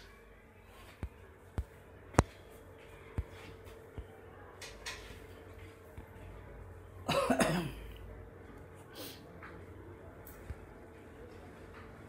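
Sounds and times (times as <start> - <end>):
faint steady hum: 0.0 - 12.0
person coughing: 7.1 - 7.9.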